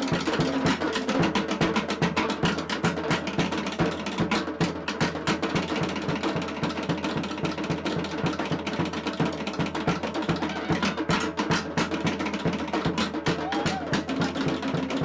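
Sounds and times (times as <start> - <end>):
wooden slit-drum roll: 10.2 - 11.7, 12.9 - 14.4
bass drum beat: 10.2 - 12.1, 12.7 - 15.0.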